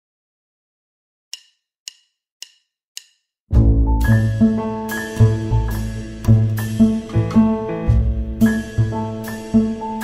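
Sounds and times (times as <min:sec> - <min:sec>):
sharp percussive ticks: 0:01.3 - 0:03.3.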